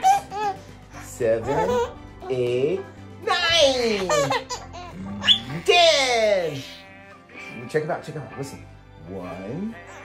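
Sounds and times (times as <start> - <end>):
baby laughing: 0.0 - 6.6.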